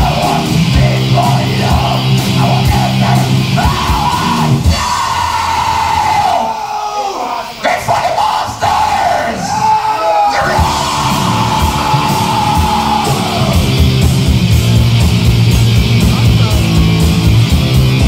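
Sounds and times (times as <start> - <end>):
metal band playing live: 0.0 - 6.5, 10.2 - 18.0.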